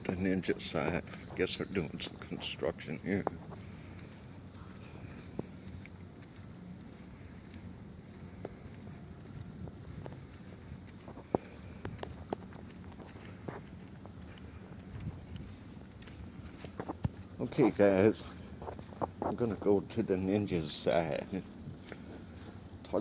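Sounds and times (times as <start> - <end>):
footsteps on mats and carpet: 0.0 - 23.0
low room hum: 0.0 - 23.0.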